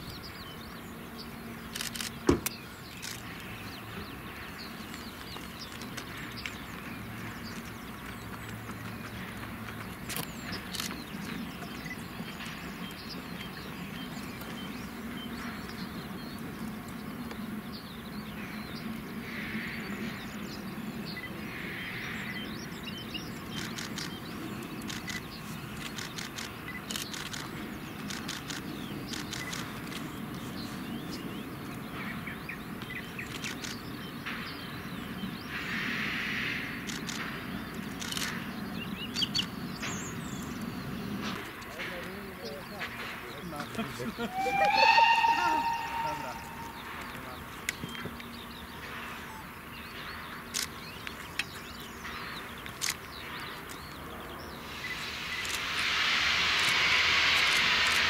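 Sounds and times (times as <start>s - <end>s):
birds chirping: 0.0s - 58.0s
steam locomotive rumble: 39.6s - 50.2s, 53.8s - 58.0s.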